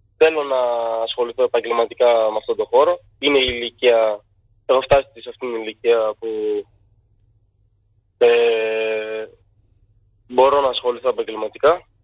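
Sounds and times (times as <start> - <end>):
man saying eh over telephone: 0.2 - 6.7, 8.2 - 9.4, 10.3 - 11.9.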